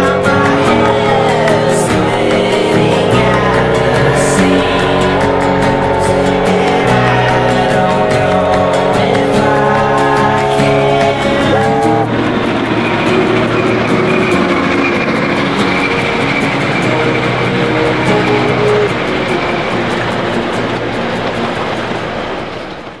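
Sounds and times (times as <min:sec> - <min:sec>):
song playing: 0:00.0 - 0:22.4
steam train passing: 0:00.0 - 0:23.0.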